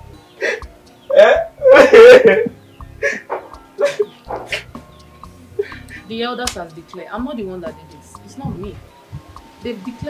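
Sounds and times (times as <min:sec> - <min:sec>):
man laughing: 0:01.1 - 0:03.2, 0:03.8 - 0:04.6, 0:05.6 - 0:06.0.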